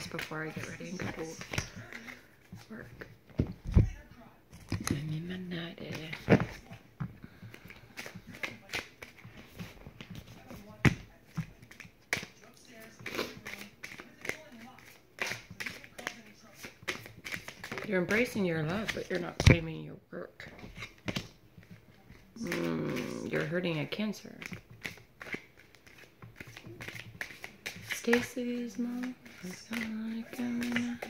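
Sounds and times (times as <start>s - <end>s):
cards being shuffled: 0.0s - 3.9s, 4.5s - 19.7s, 20.4s - 31.0s
woman murmuring: 22.4s - 23.6s.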